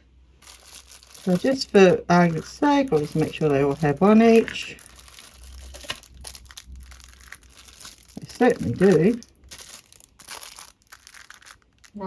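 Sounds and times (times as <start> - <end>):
plastic wrap crinkling: 0.4 - 12.0.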